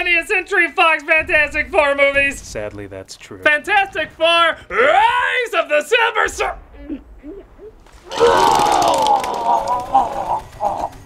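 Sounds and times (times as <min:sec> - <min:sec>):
men laughing hard: 0:09.2 - 0:11.0.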